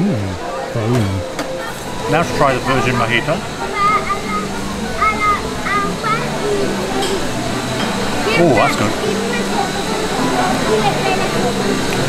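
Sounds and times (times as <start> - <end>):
murmur of diners' voices: 0.0 - 12.0.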